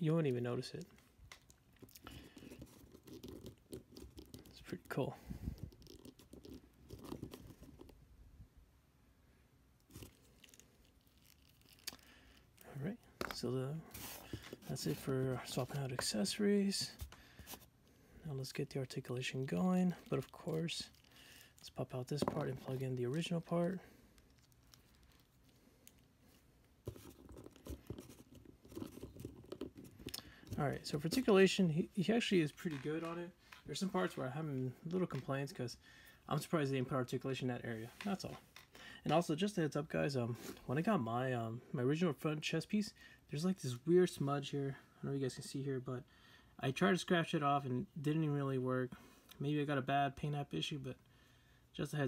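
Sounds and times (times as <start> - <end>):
plastic toy clicking and rubbing: 1.3 - 4.7, 5.5 - 8.0.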